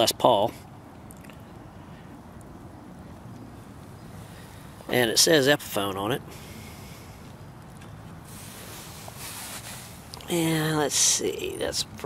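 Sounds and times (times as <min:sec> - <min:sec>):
faint hiss: 0:08.2 - 0:11.4.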